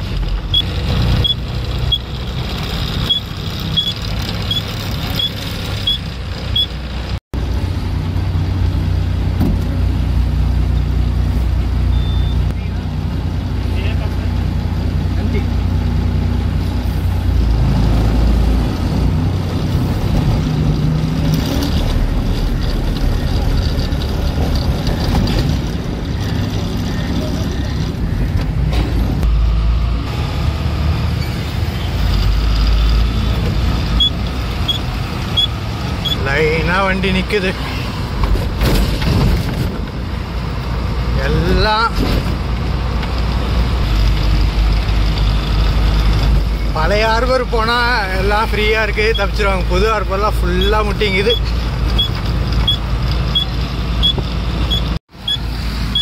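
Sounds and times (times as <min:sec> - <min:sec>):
diesel engine running: 0:00.0 - 0:56.0
road and traffic noise: 0:00.0 - 0:56.0.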